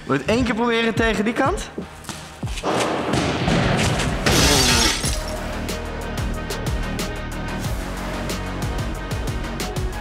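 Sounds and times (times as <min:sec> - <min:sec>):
background music: 0:00.0 - 0:10.0
glass shattering: 0:04.2 - 0:05.4.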